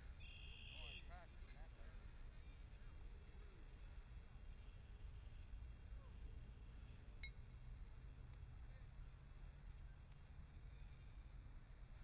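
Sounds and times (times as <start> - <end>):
faint low outdoor rumble: 0.0 - 12.0
faint high beep: 7.2 - 7.4.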